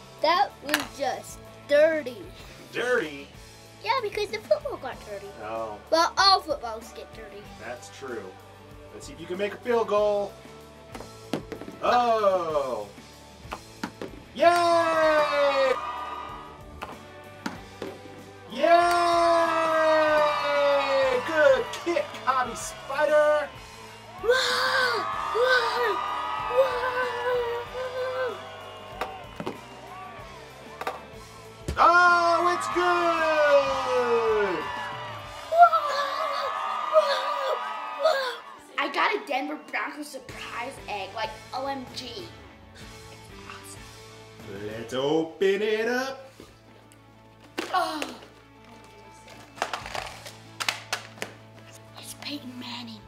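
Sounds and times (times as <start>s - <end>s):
upbeat background music: 0.0s - 53.0s
boy yelling and whooping: 14.4s - 15.8s, 24.2s - 28.4s, 35.4s - 42.2s
plastic capsule clicking open: 49.3s - 51.3s.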